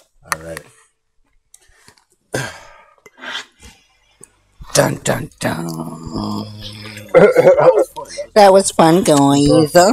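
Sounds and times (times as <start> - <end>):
person sighing into microphone: 2.3 - 3.4.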